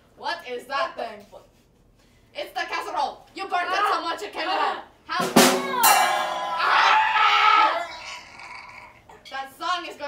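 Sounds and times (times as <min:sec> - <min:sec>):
person screaming: 0:06.4 - 0:09.0.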